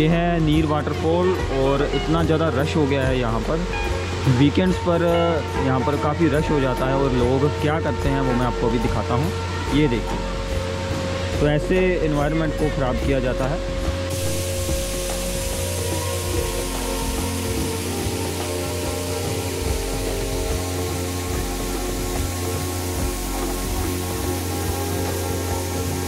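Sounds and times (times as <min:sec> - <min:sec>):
waterfall rushing: 0:00.0 - 0:12.2, 0:13.0 - 0:26.0
background music with bass: 0:00.0 - 0:26.0.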